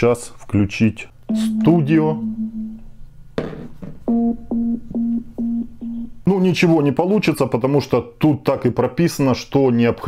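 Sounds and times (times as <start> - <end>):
short low beeps: 1.3 - 2.8.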